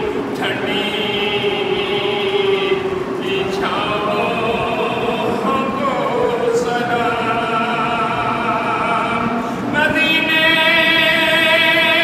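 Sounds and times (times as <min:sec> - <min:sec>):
man chanting into microphones: 0:00.0 - 0:12.0.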